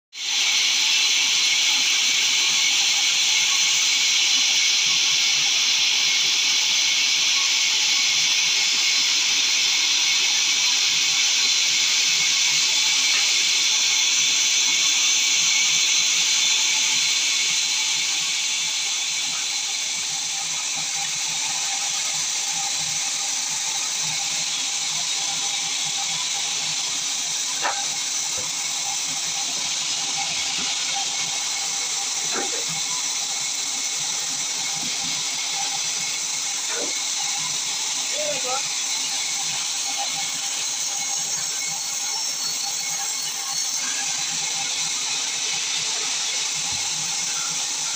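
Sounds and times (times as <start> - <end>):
band saw hissing: 0.2 - 47.9.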